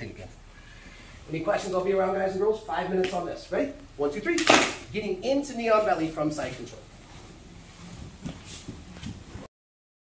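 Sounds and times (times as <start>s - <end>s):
gym room noise: 0.0s - 9.5s
people moving on mats: 5.6s - 9.5s.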